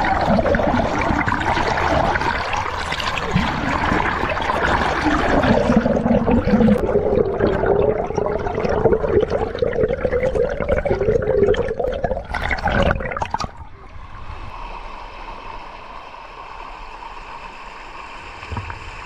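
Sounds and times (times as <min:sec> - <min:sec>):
muffled underwater bubbling and gurgling: 0:00.0 - 0:14.6.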